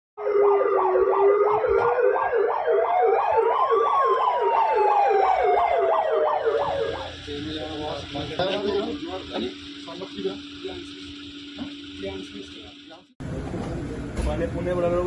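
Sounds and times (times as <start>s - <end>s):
police siren yelp and wail: 0.2s - 8.1s.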